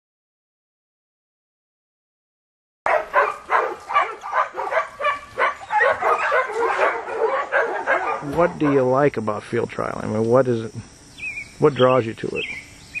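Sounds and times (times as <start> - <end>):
dogs barking: 2.9 - 9.1.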